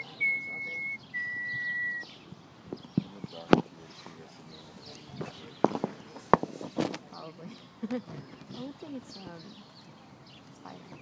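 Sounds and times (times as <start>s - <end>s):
long whistled note: 0.0s - 2.0s.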